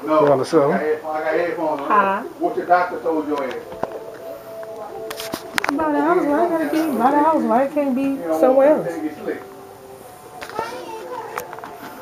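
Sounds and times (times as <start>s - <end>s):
faint children's voices: 10.2s - 12.0s.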